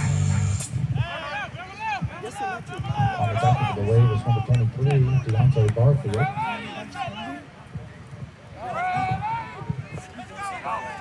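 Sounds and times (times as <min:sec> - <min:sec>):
football crowd voices: 0:00.0 - 0:11.0.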